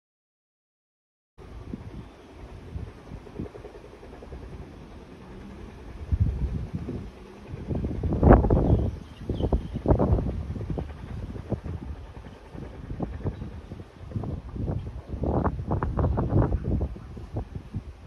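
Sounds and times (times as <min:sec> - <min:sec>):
wind buffeting microphone: 0:01.4 - 0:18.0.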